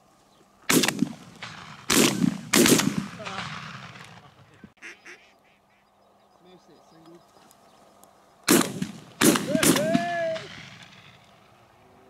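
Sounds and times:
shotgun shots echoing: 0:00.7 - 0:04.6, 0:08.5 - 0:11.5
duck quacks: 0:04.8 - 0:05.8.

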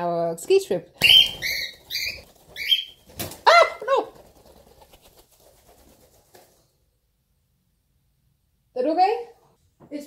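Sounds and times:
faint bird sounds: 0:01.0 - 0:04.0.

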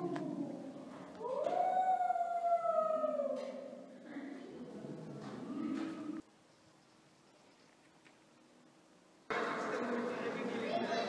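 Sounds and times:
long howling call: 0:00.0 - 0:03.7.

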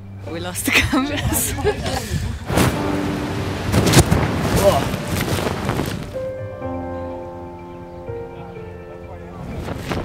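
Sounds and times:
music with long held chords: 0:00.0 - 0:10.0
wind rushing over microphone: 0:01.0 - 0:06.4, 0:09.4 - 0:10.0
sharp crack: 0:02.5 - 0:06.4.

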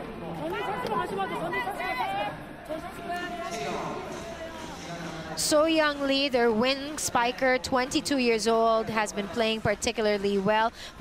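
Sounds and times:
crowd chatter in arena: 0:00.0 - 0:11.0.

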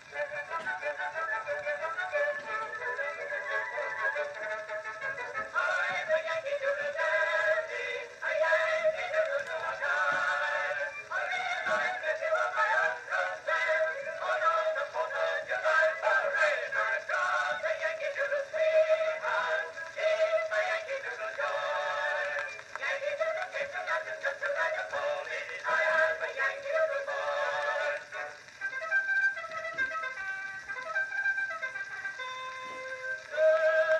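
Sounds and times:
faint surface hiss: 0:00.0 - 0:33.9
mixed chorus singing: 0:05.4 - 0:28.4, 0:33.3 - 0:33.9.

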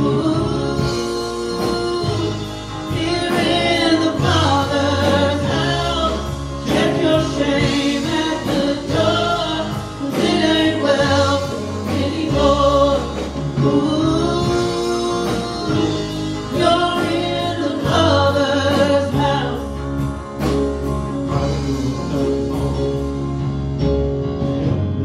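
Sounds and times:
voices singing together: 0:00.0 - 0:20.6
drums and cymbal hits: 0:00.0 - 0:25.0
electric guitar: 0:00.0 - 0:25.0
low bass notes: 0:00.0 - 0:25.0.

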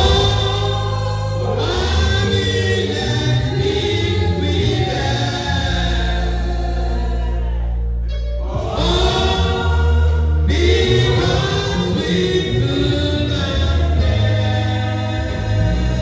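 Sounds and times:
group singing a gospel hymn: 0:00.0 - 0:16.0
low bass accompaniment: 0:00.0 - 0:16.0.

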